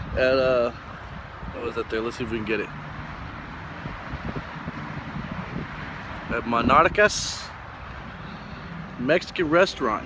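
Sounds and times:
wind buffeting phone microphone: 0:00.0 - 0:10.0.

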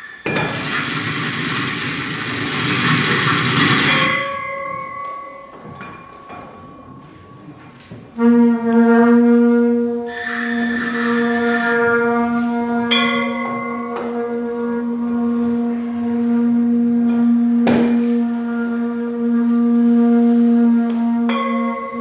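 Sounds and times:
held drone with overtones: 0:00.0 - 0:08.1, 0:09.9 - 0:22.0
higher tones: 0:02.0 - 0:08.8, 0:10.1 - 0:16.8.

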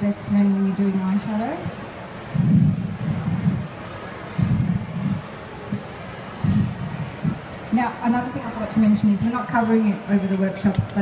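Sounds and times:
muffled wind thuds on microphone: 0:01.5 - 0:07.5.

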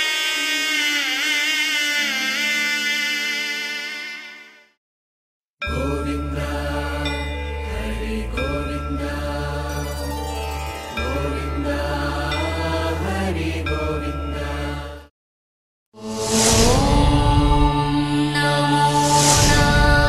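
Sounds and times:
chanted mantra: 0:05.7 - 0:09.9, 0:16.0 - 0:20.0
deep drone: 0:16.0 - 0:20.0.

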